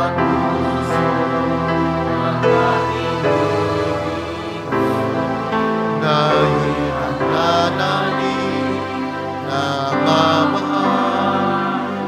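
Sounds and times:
instrumental accompaniment: 0.0s - 12.0s
person singing hymn: 0.0s - 12.0s.

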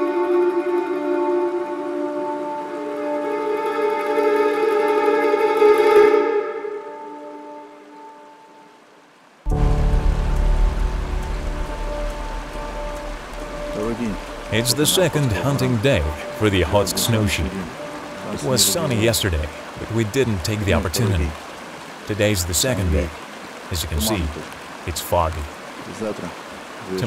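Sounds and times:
music of long held tones: 0.0s - 21.5s
stream rushing over rocks: 0.0s - 27.0s.

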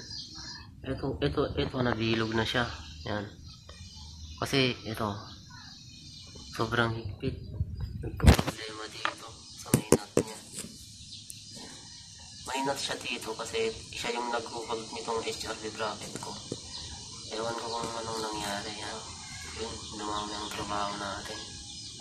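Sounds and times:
indistinct voices talking: 0.0s - 22.0s.

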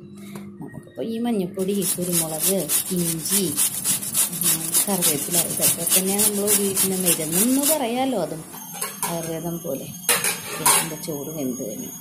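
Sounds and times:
vegetable grated on metal grater: 1.6s - 8.0s.

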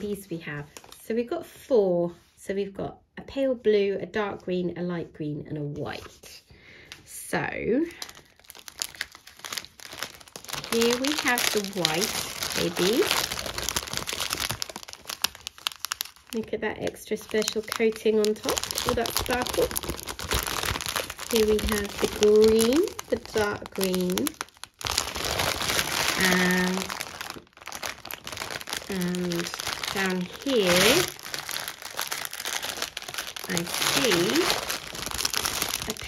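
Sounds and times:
plastic packaging crinkling: 7.9s - 36.0s.

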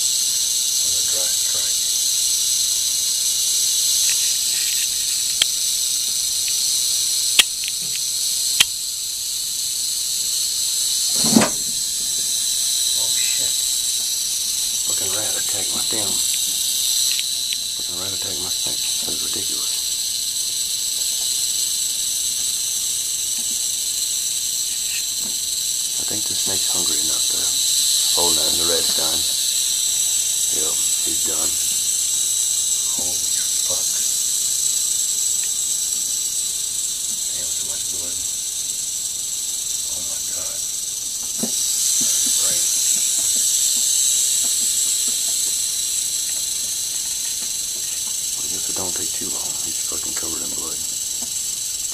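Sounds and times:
rattlesnake rattling: 0.0s - 51.9s.

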